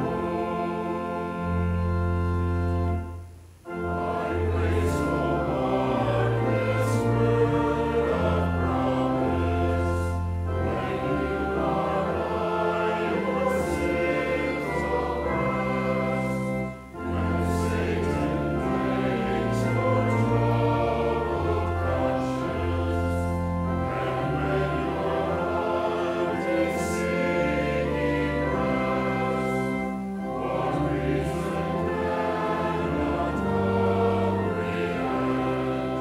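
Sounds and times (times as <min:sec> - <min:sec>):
congregation singing a hymn: 0:00.0 - 0:36.0
organ chords: 0:00.0 - 0:36.0.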